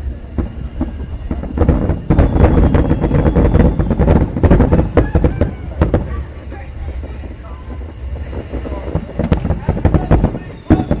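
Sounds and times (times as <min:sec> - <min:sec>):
fireworks bangs and crackles: 0:00.0 - 0:11.0
steady low rumble: 0:00.0 - 0:11.0.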